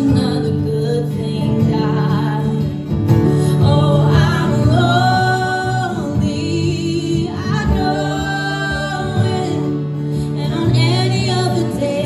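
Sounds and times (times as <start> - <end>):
strummed acoustic guitar: 0.0 - 12.0
woman singing long held notes: 3.5 - 12.0.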